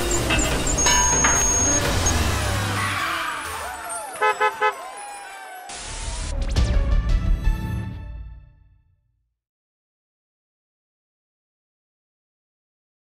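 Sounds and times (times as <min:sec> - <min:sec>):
car horn beeps: 0:00.0 - 0:02.4, 0:04.1 - 0:05.0
cartoon car sound effects: 0:00.0 - 0:06.3
upbeat music: 0:00.0 - 0:08.1.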